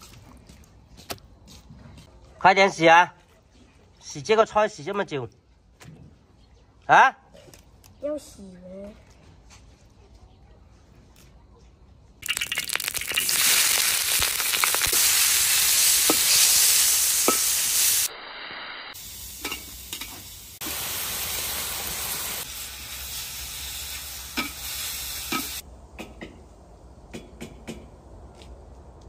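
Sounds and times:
food sizzling in a wok: 12.2 - 25.6.

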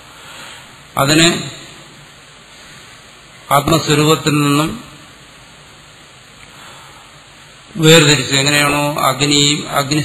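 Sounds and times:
faint hiss: 0.0 - 10.0
man reciting: 1.0 - 1.7, 7.8 - 10.0.

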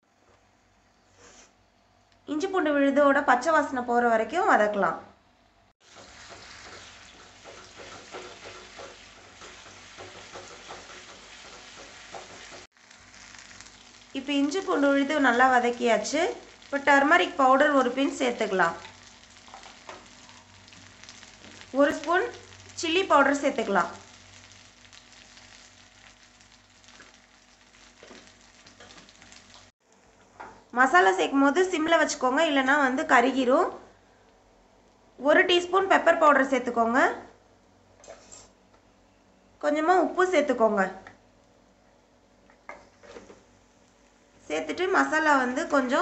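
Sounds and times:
paste sizzling in hot oil: 5.8 - 29.7.

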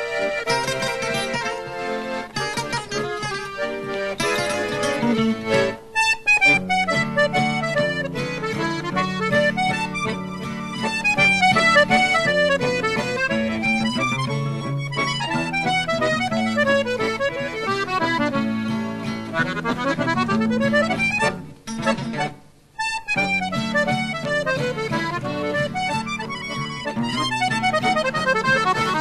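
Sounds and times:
acoustic guitar accompaniment: 0.0 - 29.0
button accordion fast melody: 0.0 - 29.0.

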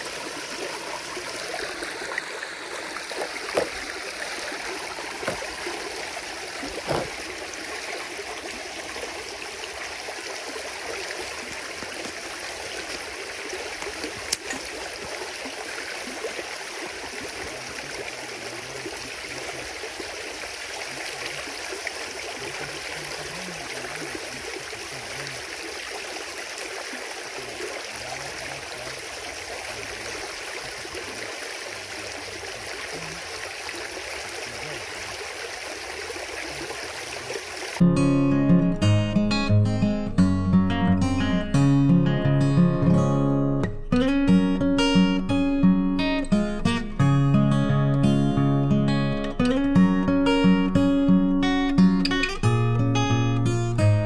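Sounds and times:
water running through gap: 0.0 - 37.8.

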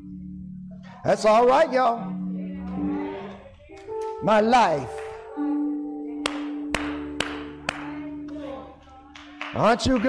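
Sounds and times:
keyboard sustained chord: 0.0 - 9.8
hand claps: 4.8 - 5.3, 6.2 - 10.0.

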